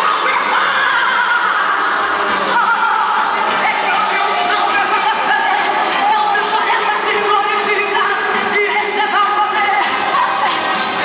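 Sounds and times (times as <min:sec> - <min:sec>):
woman singing gospel over loudspeakers: 0:00.0 - 0:10.6.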